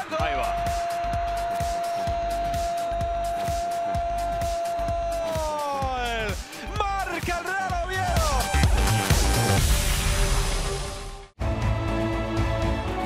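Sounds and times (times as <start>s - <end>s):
commentator's long goal shout: 0.0s - 8.4s
background music with steady beat: 0.0s - 13.0s.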